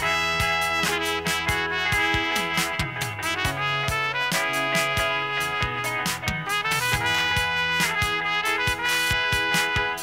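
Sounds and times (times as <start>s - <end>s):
drums: 0.0s - 10.0s
electric guitar: 0.0s - 10.0s
trumpet notes: 0.0s - 10.0s.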